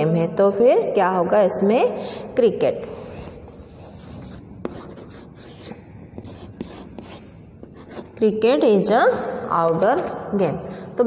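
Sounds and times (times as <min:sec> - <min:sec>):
chalk scraping on blackboard: 0:03.6 - 0:08.2.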